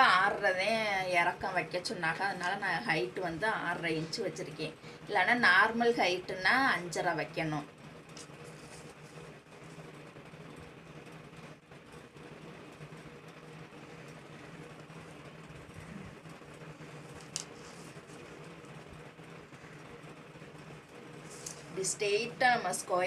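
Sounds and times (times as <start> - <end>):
steady low hum: 0.0 - 23.0
paper rustling: 8.2 - 9.8, 16.8 - 18.4, 21.2 - 21.8.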